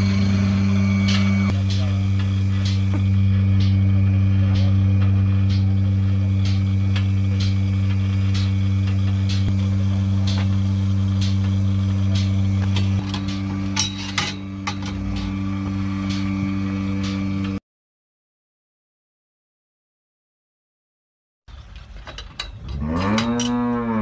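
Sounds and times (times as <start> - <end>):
pulsator clicking: 0.0 - 17.6
vacuum pump humming: 0.0 - 17.6.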